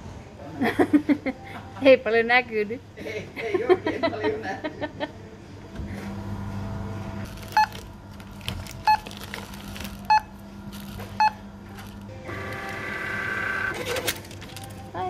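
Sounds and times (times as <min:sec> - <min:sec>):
checkout scanner beeping: 0:07.2 - 0:14.2.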